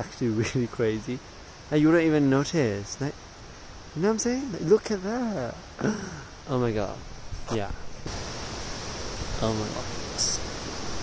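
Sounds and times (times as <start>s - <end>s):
waterfall rushing: 7.9s - 11.0s.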